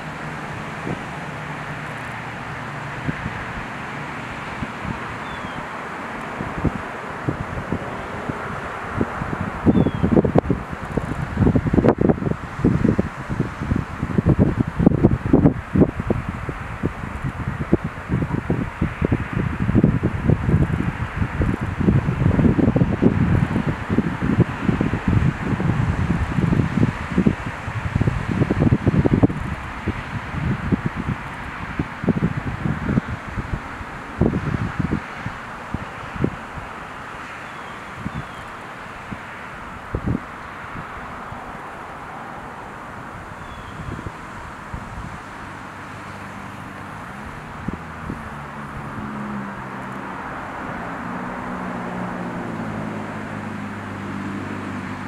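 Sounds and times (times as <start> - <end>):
steady outdoor hiss: 0.0 - 55.0
wind buffeting microphone: 0.0 - 55.0.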